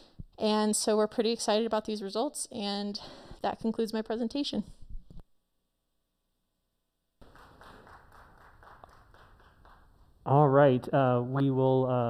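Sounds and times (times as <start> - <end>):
faint applause: 7.2 - 9.9.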